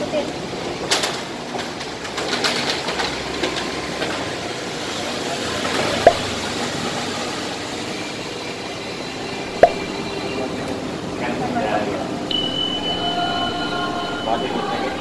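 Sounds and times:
sharp knock: 0:06.1 - 0:06.4, 0:09.6 - 0:09.9
background hum: 0:09.3 - 0:15.0.

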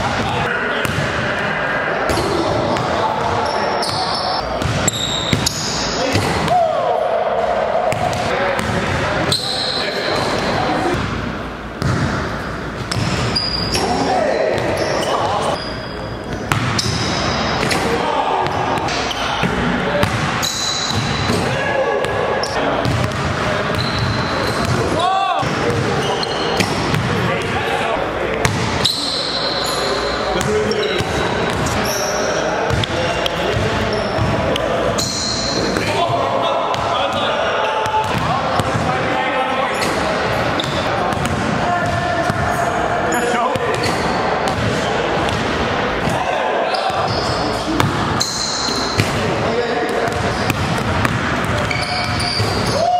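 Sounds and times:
players' voices and shouts: 0:00.0 - 0:52.9
basketballs bouncing on hardwood floor: 0:12.8 - 0:13.3, 0:20.0 - 0:20.3, 0:22.8 - 0:25.9, 0:37.8 - 0:38.9, 0:50.0 - 0:52.7.

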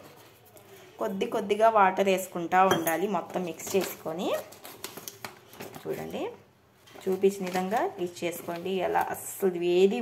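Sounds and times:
paper and plastic packet crinkling: 0:03.2 - 0:10.0.

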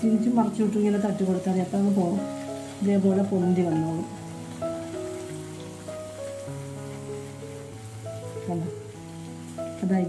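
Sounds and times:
music with held notes: 0:00.0 - 0:10.0
oil sizzling: 0:00.0 - 0:10.0.

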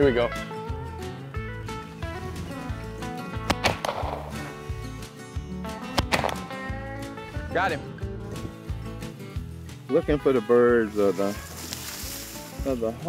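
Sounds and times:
background music: 0:00.0 - 0:13.0
shotgun shots: 0:03.4 - 0:04.5, 0:05.9 - 0:06.7.

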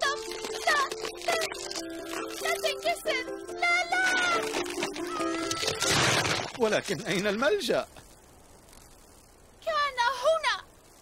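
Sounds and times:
light cartoon music: 0:00.0 - 0:06.1.

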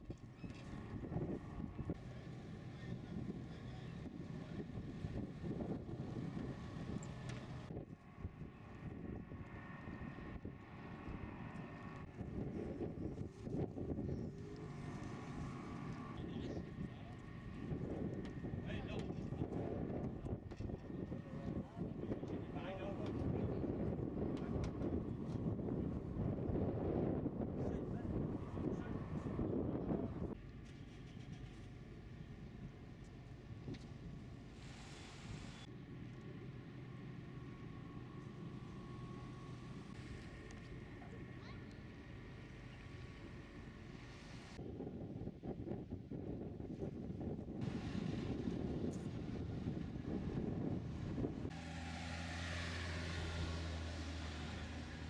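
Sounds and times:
wind rumbling on microphone: 0:00.0 - 0:30.4, 0:43.1 - 0:51.6
low engine drone: 0:34.0 - 0:44.6.

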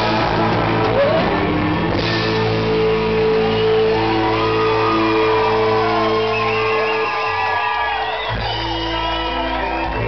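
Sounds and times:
rock band sustained chord: 0:00.0 - 0:10.0.

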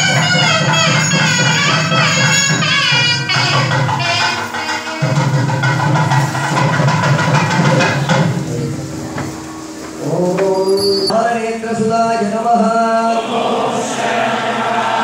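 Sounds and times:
shrill reed wind instrument: 0:00.0 - 0:05.8
hand drums: 0:00.0 - 0:11.1
group chanting: 0:12.8 - 0:15.0.

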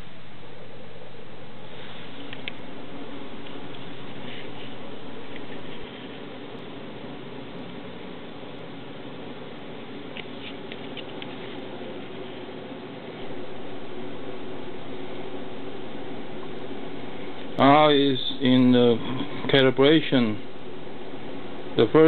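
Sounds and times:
cooling fan hum: 0:00.0 - 0:22.0.

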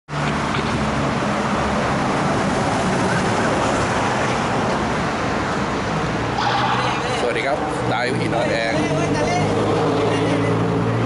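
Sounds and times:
roadside traffic noise: 0:00.0 - 0:11.0
vehicle engine humming: 0:00.1 - 0:11.0.

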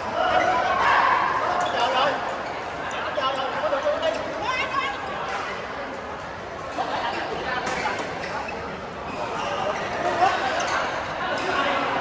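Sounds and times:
voices chattering in echoing hall: 0:00.0 - 0:12.0.

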